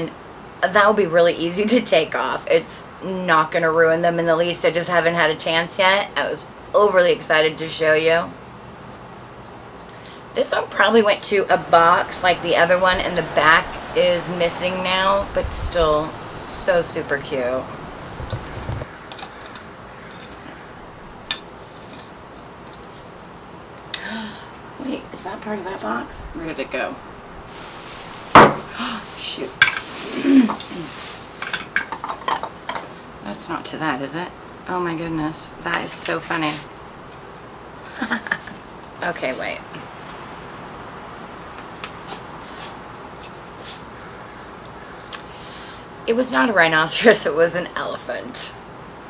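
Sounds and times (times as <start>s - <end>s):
background hiss: 0.0s - 49.0s
wooden pieces clicking and scraping: 19.0s - 20.5s.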